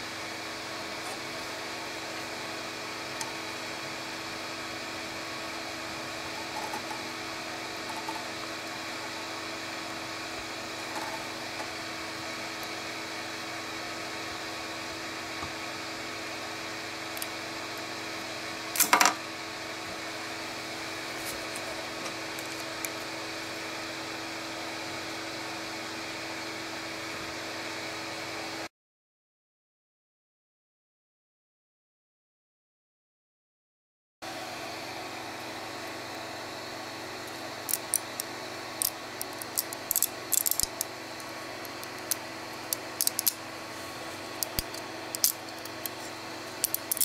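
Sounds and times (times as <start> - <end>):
printer fans humming: 0.0 - 28.7, 34.3 - 47.0.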